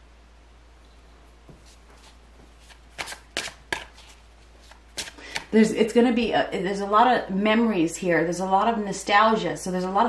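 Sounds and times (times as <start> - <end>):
crisp card snaps: 2.7 - 5.5.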